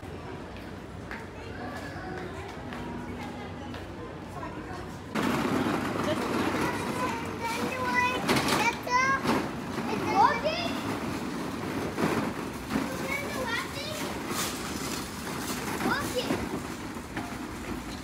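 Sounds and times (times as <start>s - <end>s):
people chatting: 0.1s - 5.1s, 5.8s - 11.1s, 12.7s - 14.4s, 15.8s - 16.6s
trolley wheels rolling: 2.4s - 18.0s
children's voices: 5.8s - 11.8s, 12.6s - 15.0s, 15.6s - 16.8s.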